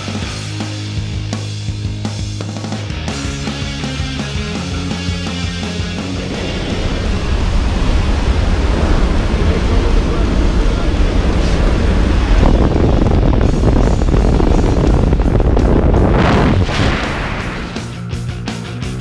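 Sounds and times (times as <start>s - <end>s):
wind buffeting microphone: 6.0s - 18.0s.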